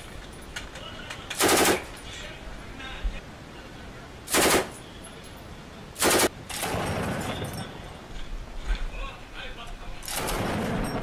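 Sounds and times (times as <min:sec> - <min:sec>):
automatic rifle fire: 0:01.4 - 0:01.9, 0:04.3 - 0:04.8, 0:06.0 - 0:07.4, 0:10.1 - 0:11.0.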